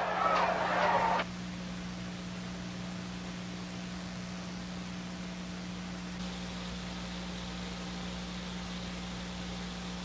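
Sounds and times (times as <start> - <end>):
old broadcast background noise: 0.0 - 1.3
steady low hum: 0.0 - 10.0.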